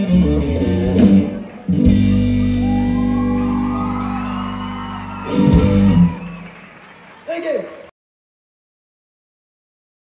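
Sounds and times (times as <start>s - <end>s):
blues-rock band chord: 0.1s - 6.2s.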